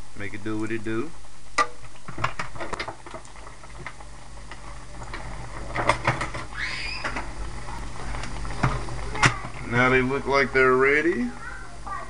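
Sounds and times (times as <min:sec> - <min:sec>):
food deep-frying in oil: 0:00.0 - 0:12.0
oil crackling and popping: 0:01.5 - 0:10.5.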